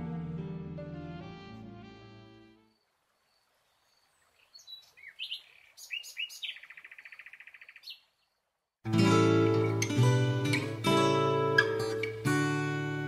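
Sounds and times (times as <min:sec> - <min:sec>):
bird chirping: 0:02.6 - 0:08.6
bird trilling: 0:04.5 - 0:08.0.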